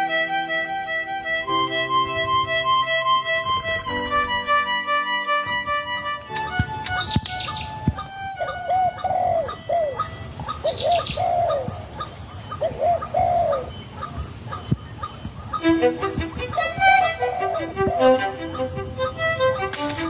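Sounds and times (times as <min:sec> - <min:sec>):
music: 0:00.0 - 0:10.4, 0:15.6 - 0:20.0
bird chirping: 0:05.5 - 0:20.0
dove cooing: 0:08.4 - 0:15.6, 0:16.8 - 0:18.6.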